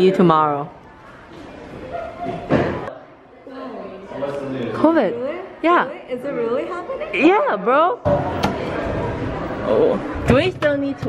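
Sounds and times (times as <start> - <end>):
faint voices: 0.7 - 11.0.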